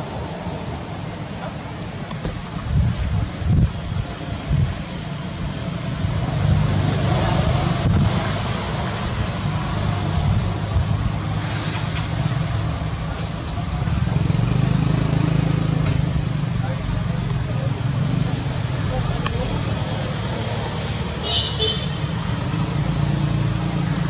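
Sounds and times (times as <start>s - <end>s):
outdoor background noise: 0.0s - 24.0s.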